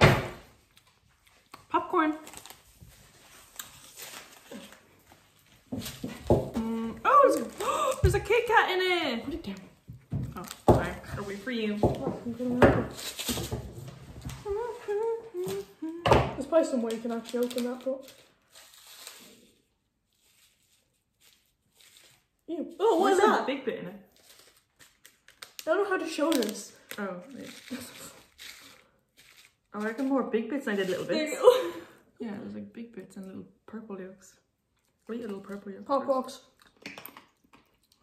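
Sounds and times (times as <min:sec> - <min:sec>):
plastic wrapper rustling: 0:00.5 - 0:06.2, 0:06.8 - 0:08.6, 0:09.3 - 0:11.9, 0:12.9 - 0:23.2, 0:24.0 - 0:31.7
person humming: 0:14.4 - 0:16.2.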